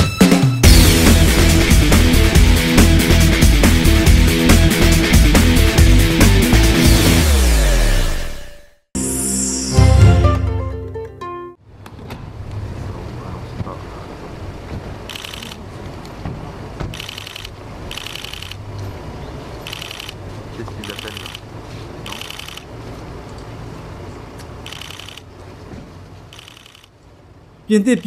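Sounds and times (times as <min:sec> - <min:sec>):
camera shutters firing in bursts: 0:15.1 - 0:15.6, 0:16.9 - 0:18.6, 0:19.6 - 0:20.2, 0:20.8 - 0:21.4, 0:22.0 - 0:22.7, 0:24.6 - 0:25.3, 0:26.3 - 0:26.9.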